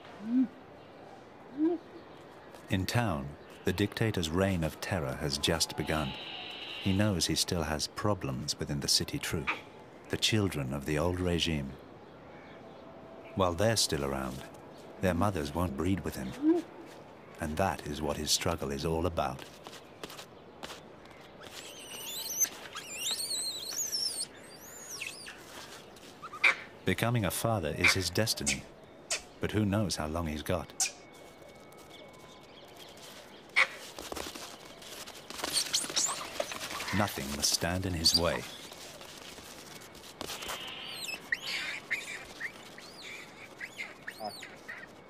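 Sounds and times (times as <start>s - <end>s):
monkeys squealing: 21.4s - 25.4s, 35.3s - 38.6s, 40.3s - 45.0s.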